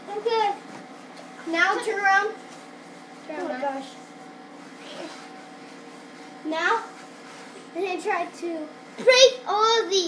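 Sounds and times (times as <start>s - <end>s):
room hum and hiss: 0.0s - 10.0s.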